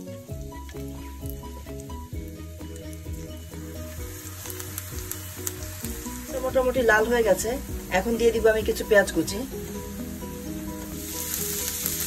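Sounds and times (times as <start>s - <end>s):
background music: 0.0s - 12.0s
garlic sizzling in hot oil: 0.0s - 12.0s.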